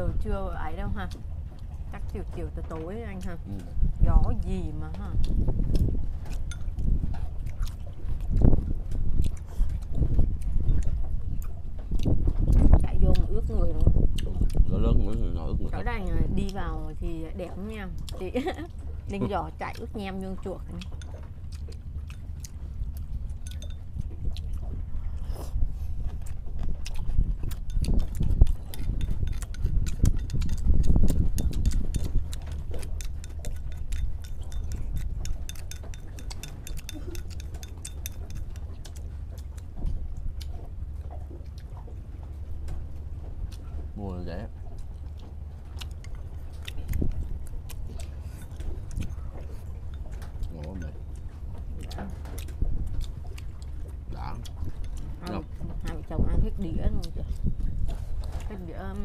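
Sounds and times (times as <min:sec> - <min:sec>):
chewing: 0:00.0 - 0:59.0
wind rumble on microphone: 0:00.0 - 0:59.0
chopsticks clicking on bowls: 0:27.7 - 0:39.0.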